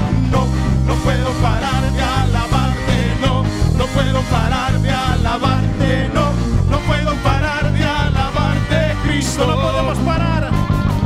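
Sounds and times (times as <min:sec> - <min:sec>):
drums: 0:00.0 - 0:11.0
electric bass: 0:00.0 - 0:11.0
electric guitar: 0:00.0 - 0:11.0
lead singer singing: 0:00.2 - 0:10.7.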